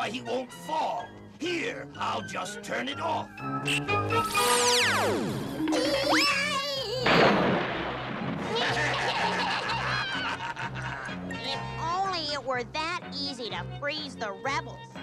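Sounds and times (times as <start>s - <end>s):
background music: 0.0s - 15.0s
wavering cartoon cry: 5.7s - 7.1s
noisy crash: 7.0s - 9.2s.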